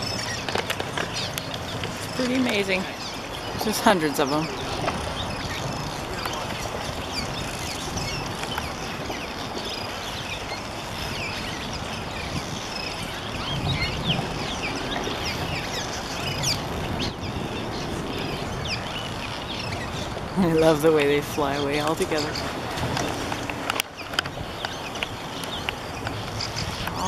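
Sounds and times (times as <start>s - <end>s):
steady low rumble: 0.0s - 27.0s
swallows chirping in chorus: 0.0s - 27.0s.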